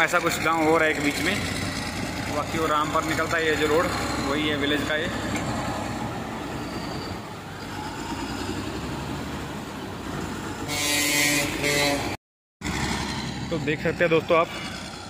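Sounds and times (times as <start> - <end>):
diesel engine running: 0.0 - 10.7.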